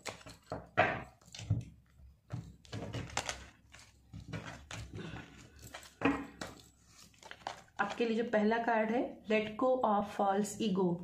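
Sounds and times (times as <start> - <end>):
cards being shuffled: 2.4 - 8.1.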